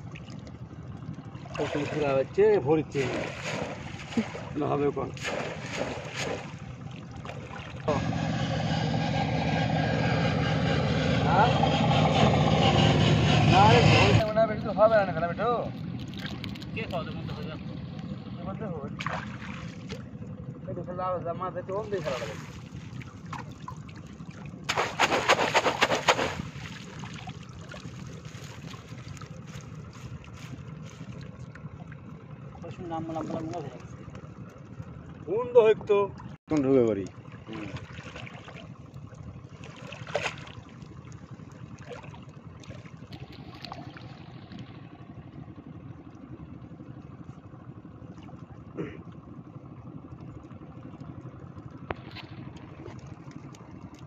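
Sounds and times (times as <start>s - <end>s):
engine running: 0.0s - 54.0s
water splashing and dripping: 2.9s - 4.6s, 5.2s - 7.9s, 37.5s - 44.6s.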